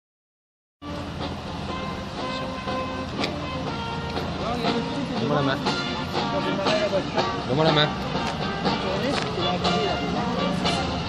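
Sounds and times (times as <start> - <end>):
old car engines running slowly: 0.8 - 11.0.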